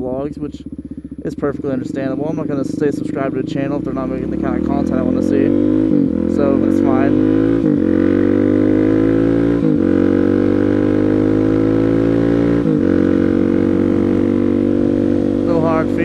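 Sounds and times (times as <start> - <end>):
motorcycle engine accelerating: 0.0 - 16.0.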